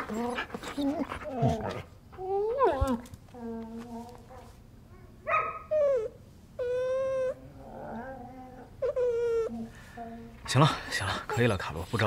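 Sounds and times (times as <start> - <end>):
dog whining: 0.0 - 4.5, 5.3 - 10.3.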